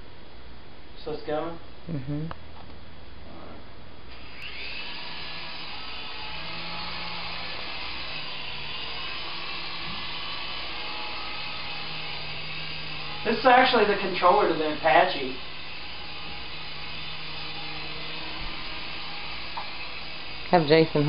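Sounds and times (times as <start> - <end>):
toy helicopter rotors whirring: 4.1 - 21.0.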